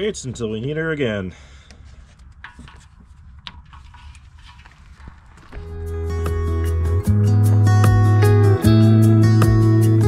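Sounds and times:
acoustic guitar music: 5.5s - 10.0s.

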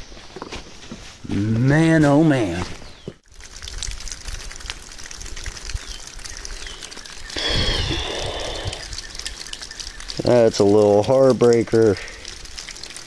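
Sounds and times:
water pouring and splashing: 2.1s - 13.0s.

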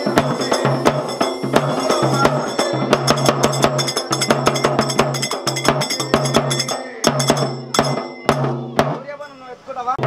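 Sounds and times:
metallic percussion strikes: 0.0s - 9.1s.

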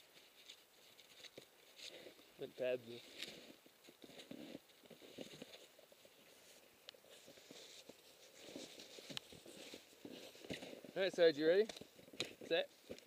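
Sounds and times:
faint rustling: 0.0s - 13.0s.

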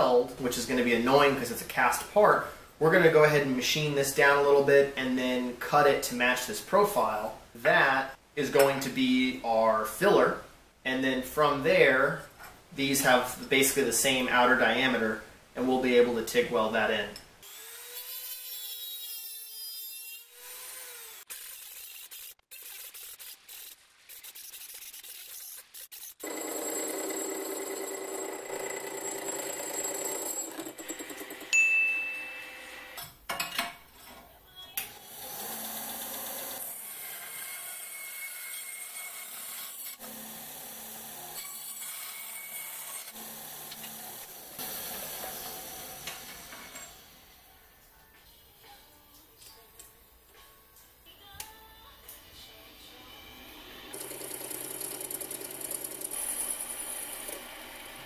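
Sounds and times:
band saw cutting metal tube: 17.4s - 27.1s, 35.1s - 47.3s, 53.4s - 58.0s
handheld power tool winding down: 53.9s - 58.0s.

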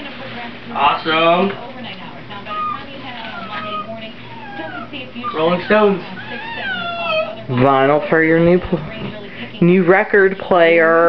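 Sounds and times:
faint background talk: 0.0s - 10.5s.

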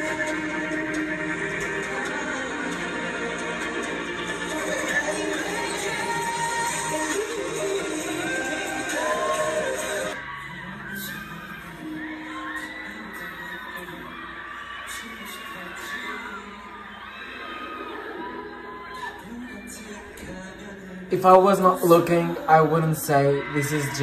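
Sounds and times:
live concert music: 0.0s - 10.4s
man singing slow ballad: 0.0s - 14.2s, 19.0s - 24.0s
crowd screaming and cheering: 0.0s - 24.0s.

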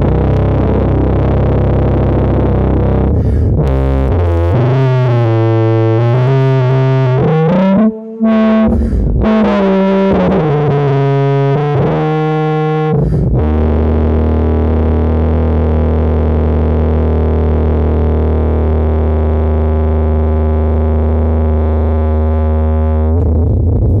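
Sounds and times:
processed tuba notes: 0.0s - 24.0s.

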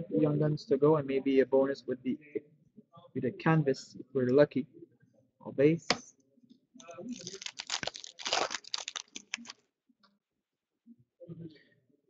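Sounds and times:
card pack wrapper crinkling: 6.8s - 9.6s
cards rustled and flicked: 7.1s - 9.5s.

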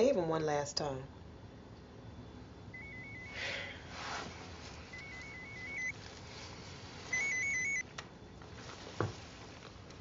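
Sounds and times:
electronic phone ringtone trill: 2.8s - 3.7s, 4.9s - 5.9s, 7.1s - 7.8s.

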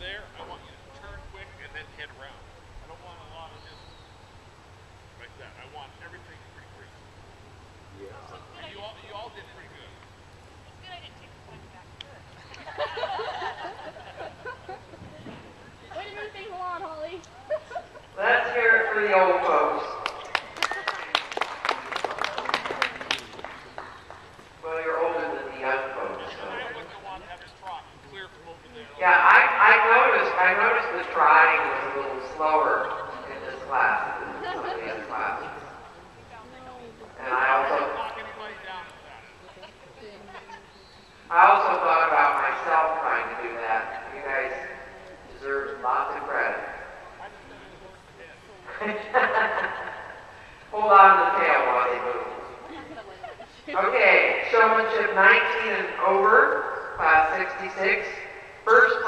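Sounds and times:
man speaking: 0.0s - 3.8s, 5.2s - 7.0s, 18.2s - 20.0s, 24.6s - 35.8s, 37.2s - 39.4s, 41.3s - 44.6s, 50.7s - 52.6s
man talking: 0.0s - 3.8s, 5.2s - 7.0s, 7.9s - 10.0s, 24.6s - 35.7s, 37.2s - 39.4s
crowd clapping: 19.9s - 24.6s
faint background voices: 43.3s - 50.7s.

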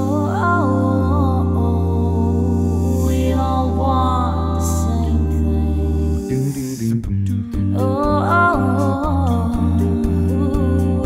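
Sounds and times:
low sung bass line: 0.0s - 11.0s
vocal percussion: 0.0s - 11.0s
lead voice sliding between notes: 0.6s - 7.1s.

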